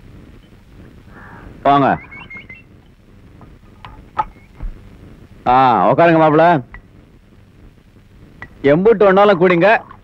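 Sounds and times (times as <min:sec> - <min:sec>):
high bird chirps: 0:01.9 - 0:02.7.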